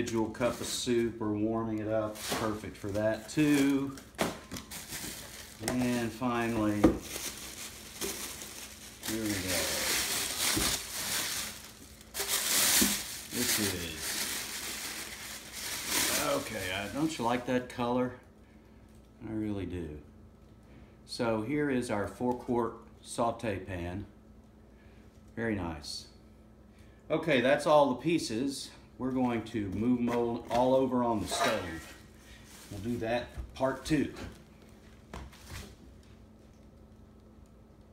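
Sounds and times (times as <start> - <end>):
plastic and paper crinkling: 0.0 - 17.4, 31.1 - 36.2.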